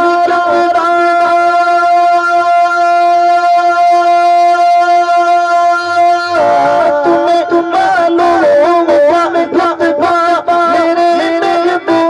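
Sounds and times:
man singing sustained high note: 0.0s - 12.0s.

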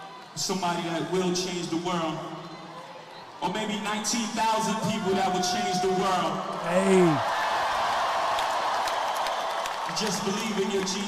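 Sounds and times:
crowd cheering and applauding: 4.8s - 11.0s.

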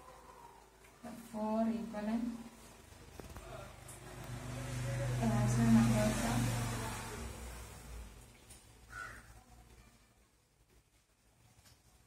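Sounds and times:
vehicle engine hum: 3.8s - 8.2s.

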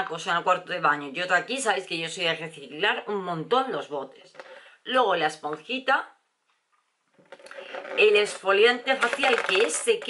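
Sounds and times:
woman speaking: 0.0s - 6.2s, 7.6s - 10.0s.

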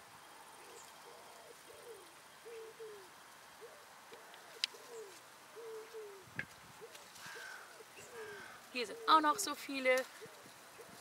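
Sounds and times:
bird cooing: 0.5s - 11.0s.

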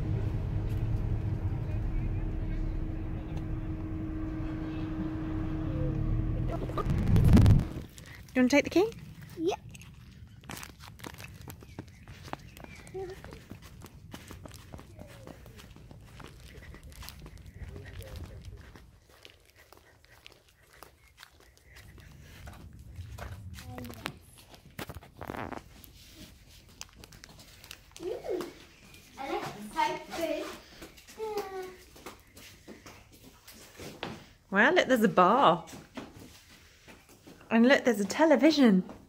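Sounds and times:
low rumble: 0.0s - 26.2s
footsteps: 6.5s - 34.3s.

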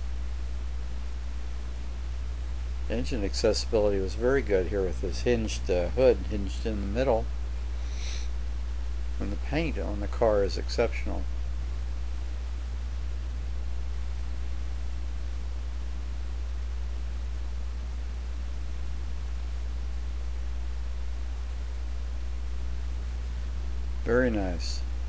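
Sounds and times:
faint hiss: 0.0s - 25.0s
steady low hum: 0.0s - 25.0s.

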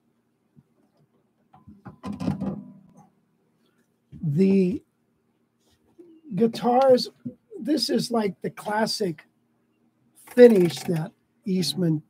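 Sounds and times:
guitar clunk and rattle: 1.6s - 2.9s.

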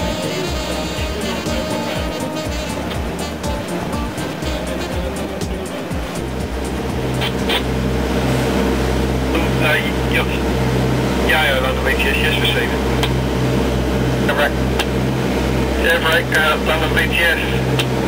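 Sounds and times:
background music: 0.0s - 18.0s
boat engine drone: 0.0s - 18.0s.

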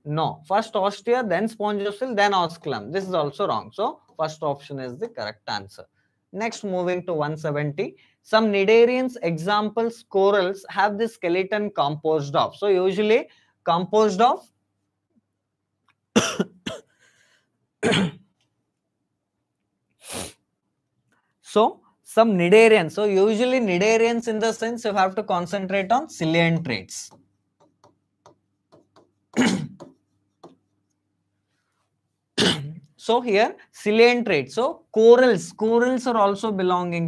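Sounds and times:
man coughing: 16.2s - 17.0s, 17.8s - 18.3s, 29.4s - 29.8s, 32.4s - 32.8s.

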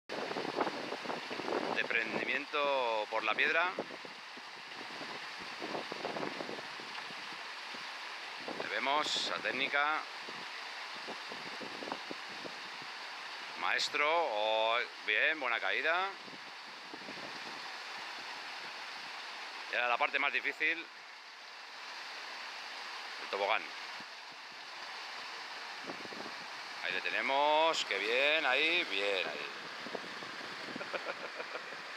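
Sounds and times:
mountain stream rushing: 0.1s - 31.9s.

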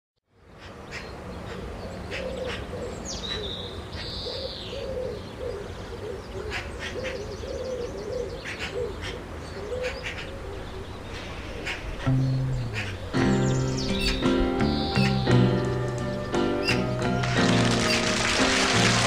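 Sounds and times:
bird cooing: 2.1s - 15.2s
high bird chirps: 10.0s - 16.8s
high whistled bird call: 10.2s - 18.8s.

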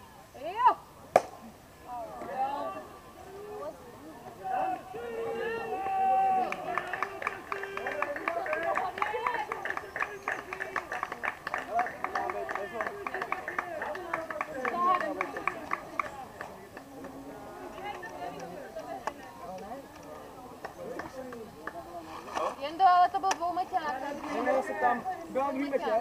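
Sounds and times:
players calling and shouting: 0.0s - 26.0s.

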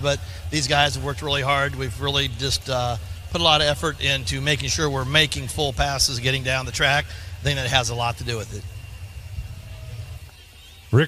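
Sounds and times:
drag strip background rumble: 0.0s - 11.0s.

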